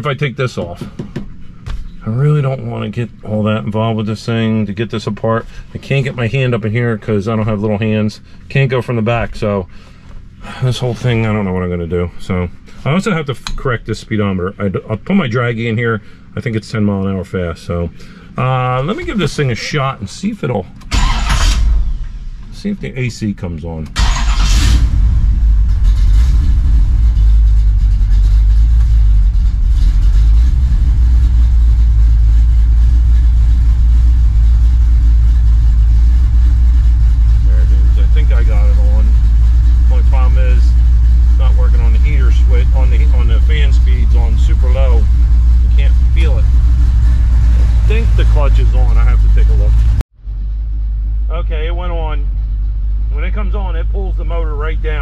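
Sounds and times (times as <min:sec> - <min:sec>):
car engine starting and idling: 0:00.0 - 0:55.0.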